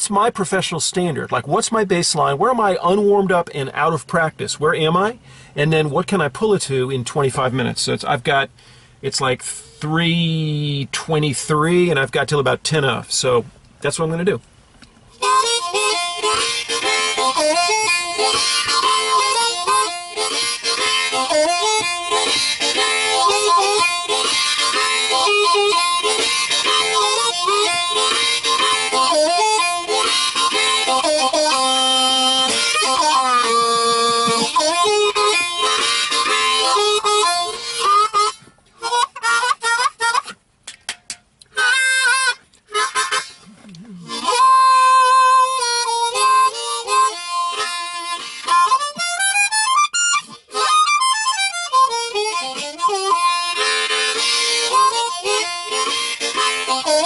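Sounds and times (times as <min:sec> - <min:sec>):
blues harmonica playing: 0:15.1 - 0:40.5, 0:41.4 - 0:57.0.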